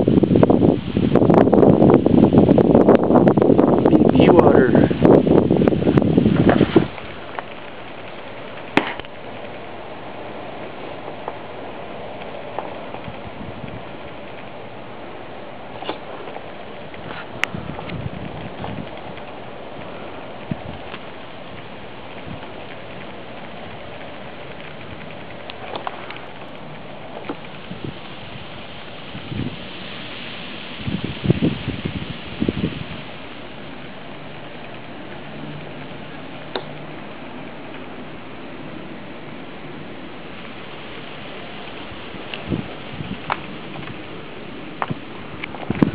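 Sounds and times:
crackles and knocks: 5.0 - 45.9.

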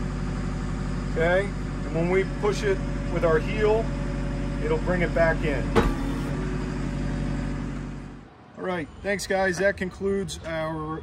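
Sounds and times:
diesel engine running: 0.0 - 8.4.

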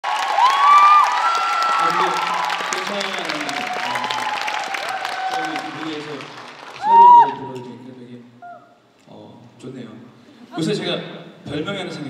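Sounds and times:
audience clapping and cheering: 0.0 - 7.8.

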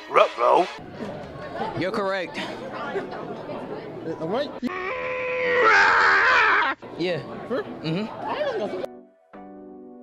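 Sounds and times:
strained vocal wail: 4.6 - 6.8.

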